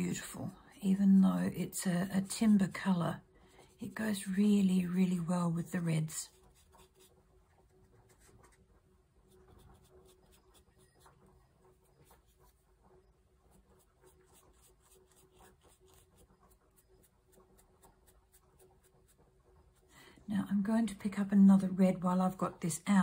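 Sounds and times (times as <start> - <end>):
ink brush scratching paper: 2.1 - 19.9.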